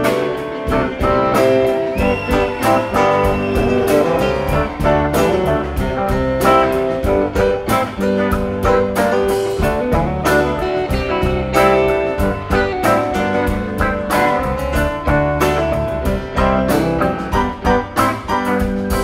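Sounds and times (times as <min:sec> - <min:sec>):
live rock band instrumental: 0:00.0 - 0:19.0.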